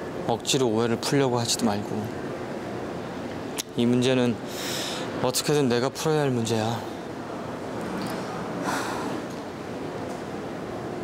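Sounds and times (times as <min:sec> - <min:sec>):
background hiss: 0:00.0 - 0:11.0
person exhaling: 0:08.6 - 0:09.2.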